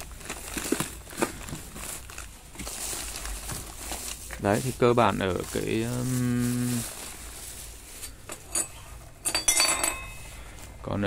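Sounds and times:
plastic bag rustling: 0:00.0 - 0:11.0
man saying uhh: 0:05.8 - 0:06.9
metal parts clinking: 0:07.9 - 0:10.4.

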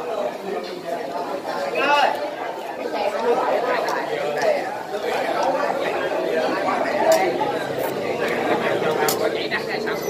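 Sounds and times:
babble of voices: 0:00.0 - 0:10.0.

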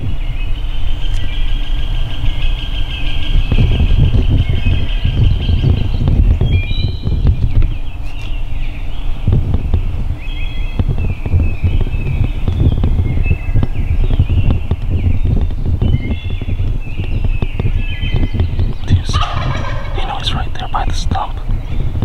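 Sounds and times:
turkey gobbling: 0:18.9 - 0:21.4.

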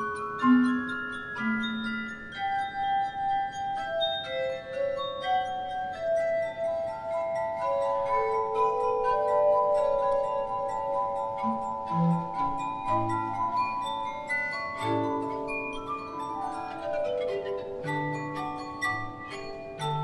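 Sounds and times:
glass harp melody: 0:00.0 - 0:20.0
tuned glass tubes ringing: 0:00.0 - 0:20.0.

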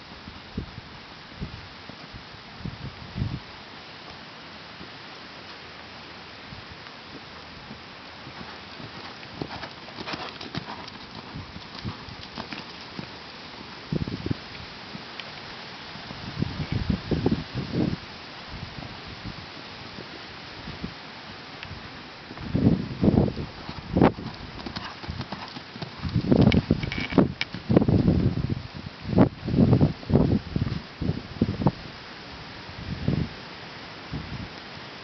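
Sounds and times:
horse hoofbeats on sand: 0:07.6 - 0:13.2, 0:23.5 - 0:27.6.

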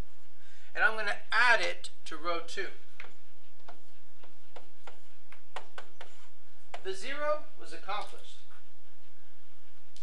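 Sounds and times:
steady low hum: 0:00.0 - 0:10.0
stylus tapping on touchscreen: 0:03.0 - 0:06.9.

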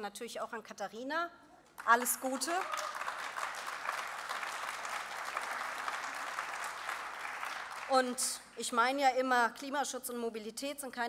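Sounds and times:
audience applauding: 0:01.8 - 0:08.3.

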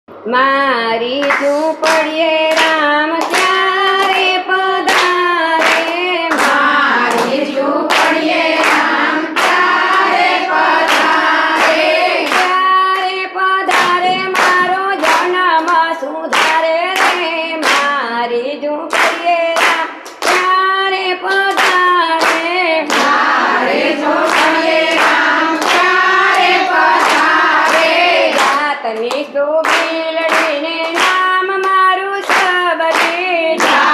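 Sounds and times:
women singing together: 0:00.3 - 0:33.9
hand clapping: 0:01.2 - 0:18.1, 0:18.8 - 0:33.9.

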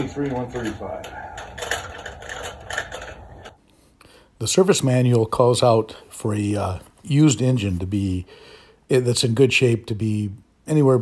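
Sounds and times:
metallic clicks and rattles of tools: 0:00.0 - 0:03.6
low steady hum: 0:00.0 - 0:11.0.

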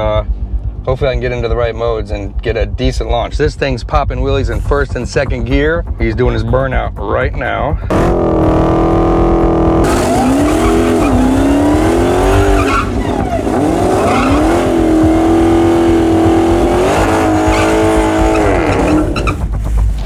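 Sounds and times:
car engine revving hard: 0:07.9 - 0:19.4
tyres squealing on pavement: 0:12.4 - 0:14.4.

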